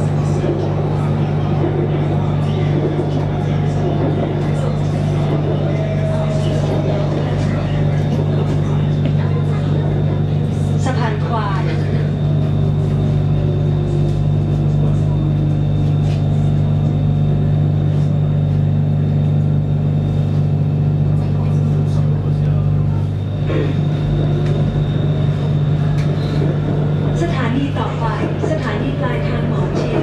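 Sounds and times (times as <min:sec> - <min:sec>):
train car hum and rumble: 0:00.0 - 0:30.0.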